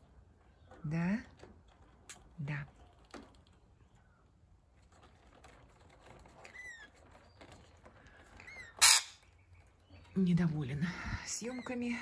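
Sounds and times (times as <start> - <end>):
faint bird chirps: 6.4 - 12.0
parrot harsh screech: 8.6 - 9.2.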